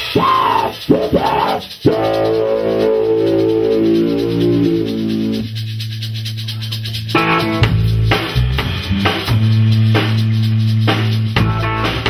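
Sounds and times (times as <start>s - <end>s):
electric bass and guitar note: 0.0s - 5.7s, 7.1s - 10.4s, 11.4s - 12.0s
cymbal ticking: 0.0s - 12.0s.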